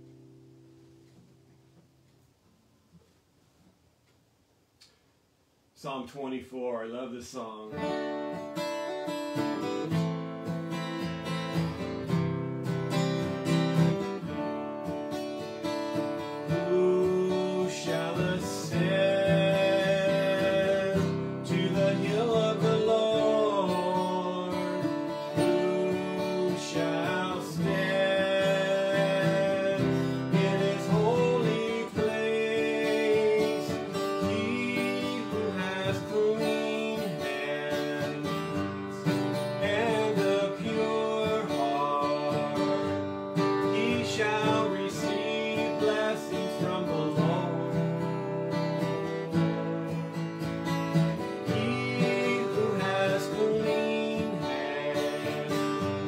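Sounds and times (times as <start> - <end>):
acoustic guitar strumming: 0.0 - 2.1, 7.3 - 56.0
man singing: 5.8 - 7.9, 16.4 - 50.2, 51.2 - 56.0.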